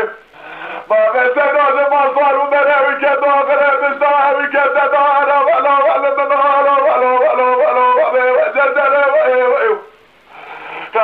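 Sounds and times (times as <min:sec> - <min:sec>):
man singing solo: 0:00.9 - 0:09.9.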